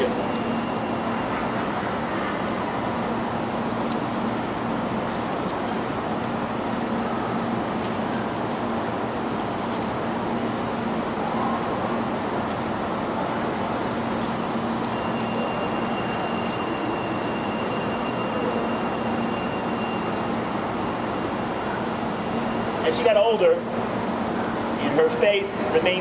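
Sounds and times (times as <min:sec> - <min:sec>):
terminal hall rushing noise: 0:00.0 - 0:26.0
thin high whine: 0:14.2 - 0:23.6.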